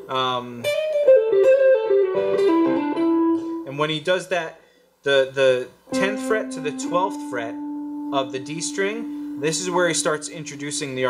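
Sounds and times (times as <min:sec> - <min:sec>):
electric guitar lick: 0:00.0 - 0:03.7, 0:05.9 - 0:11.0.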